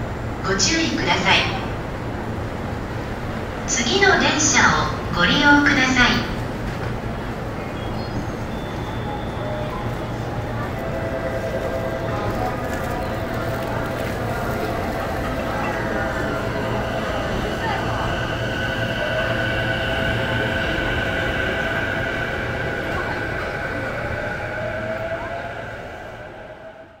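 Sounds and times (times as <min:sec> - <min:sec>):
train rumble: 0:00.0 - 0:27.0.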